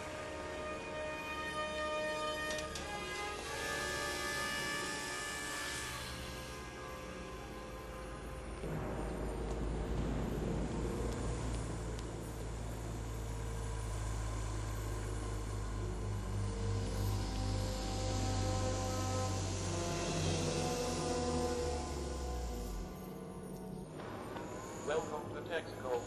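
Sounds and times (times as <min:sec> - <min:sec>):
orchestral film score: 0:00.0 - 0:26.0
rushing hiss: 0:08.7 - 0:23.0.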